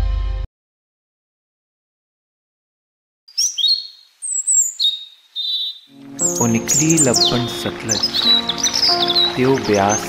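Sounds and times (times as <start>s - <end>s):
bird chirps and whistles: 3.3s - 7.3s.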